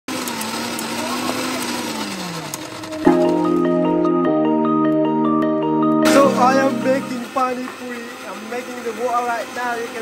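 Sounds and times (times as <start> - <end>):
mixer grinder motor running: 0.1 - 4.1, 6.0 - 10.0
marimba-like music: 3.1 - 7.3.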